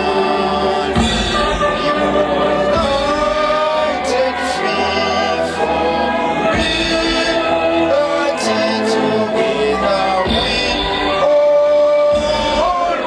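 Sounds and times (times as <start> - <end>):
group singing in chorus: 0.0 - 13.0
man singing into microphone: 0.0 - 13.0.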